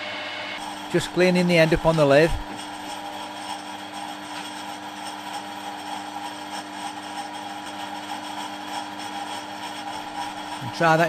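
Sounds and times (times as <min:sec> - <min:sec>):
steady hum: 0:10.0 - 0:11.0.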